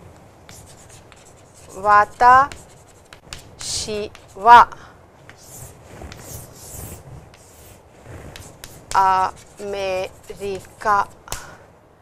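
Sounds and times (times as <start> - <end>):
chalk scratching on chalkboard: 0.5 - 11.5
woman speaking: 1.7 - 2.6, 3.6 - 4.8, 8.9 - 11.5.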